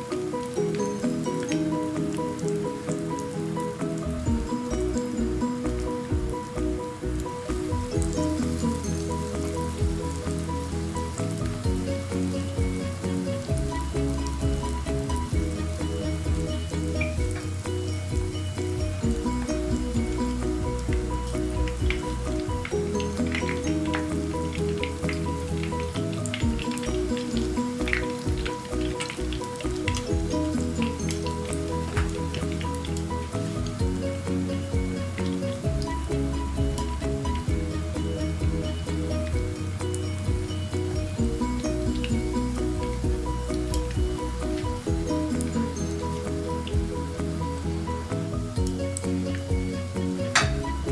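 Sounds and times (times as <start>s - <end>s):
background music: 0.0s - 50.9s
pastries sizzling in hot oil: 0.0s - 50.9s.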